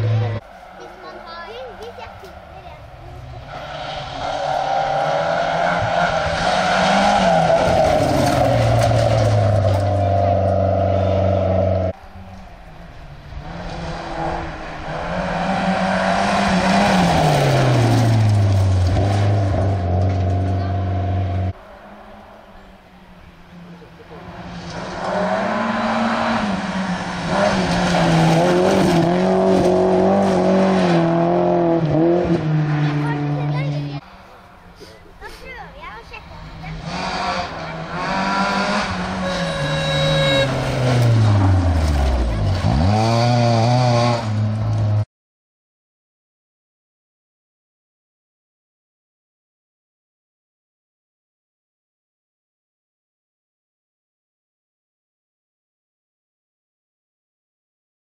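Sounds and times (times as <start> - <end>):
rally car engines passing at full throttle: 0.0 - 45.0.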